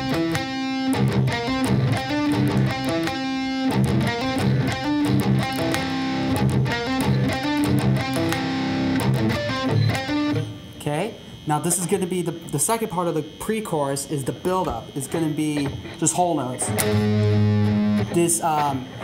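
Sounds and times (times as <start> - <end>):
electric guitar riff: 0.0 - 10.8, 15.8 - 19.0.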